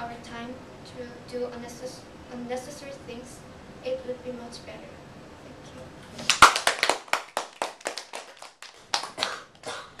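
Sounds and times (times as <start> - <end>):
small group applauding: 6.2 - 10.0.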